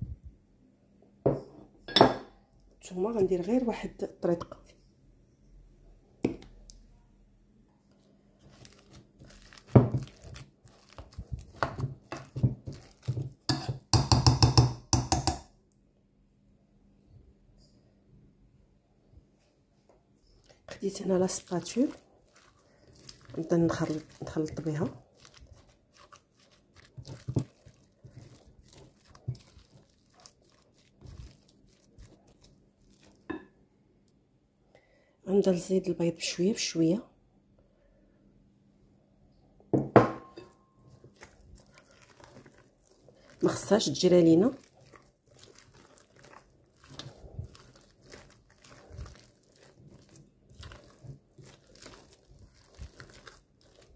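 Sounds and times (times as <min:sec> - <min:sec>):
utensil mashing potatoes in glass bowl: 0:08.0 - 0:15.4, 0:20.5 - 0:33.5, 0:40.9 - 0:53.9.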